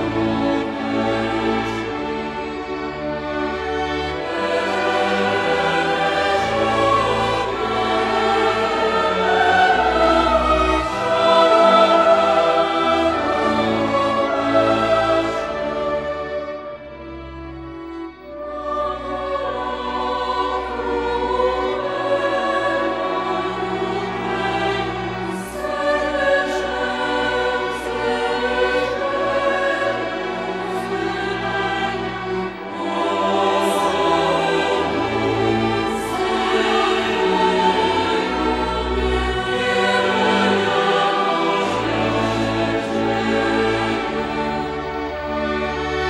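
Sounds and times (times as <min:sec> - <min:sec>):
mixed choir singing a carol: 0:00.0 - 0:46.0
string orchestra: 0:00.0 - 0:46.0.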